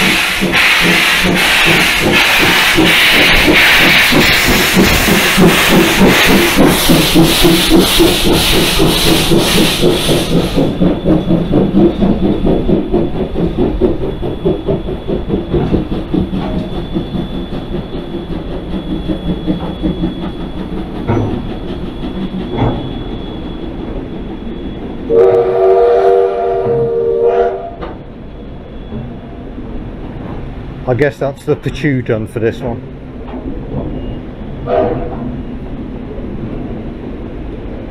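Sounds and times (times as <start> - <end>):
steam locomotive chuffing: 0.0 - 37.9
steam locomotive whistle: 25.0 - 28.0, 34.6 - 35.3.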